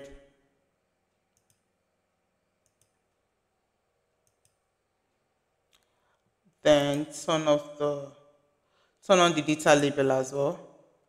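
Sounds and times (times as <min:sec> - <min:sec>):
computer mouse clicks: 0:01.1 - 0:01.7, 0:02.6 - 0:03.2, 0:04.2 - 0:04.6.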